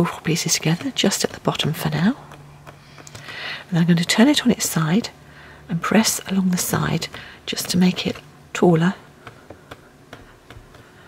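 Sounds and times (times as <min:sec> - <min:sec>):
fingers tapping clay on a tile: 0:00.4 - 0:03.5, 0:06.0 - 0:08.2, 0:09.1 - 0:11.0.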